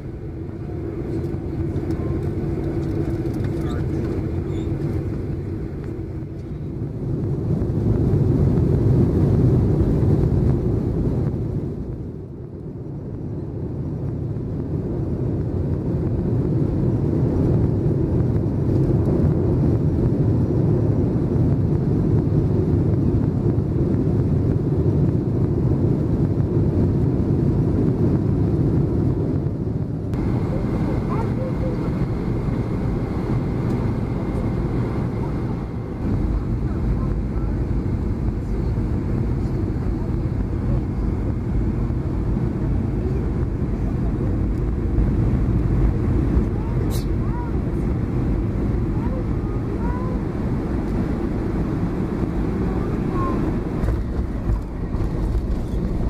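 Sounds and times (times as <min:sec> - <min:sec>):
airliner engine and airflow rush: 0:00.0 - 0:56.0.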